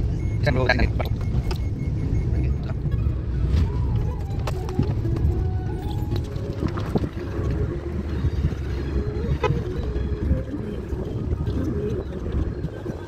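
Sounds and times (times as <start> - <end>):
car engine and road rumble: 0.0 - 13.0
music playing: 0.0 - 13.0.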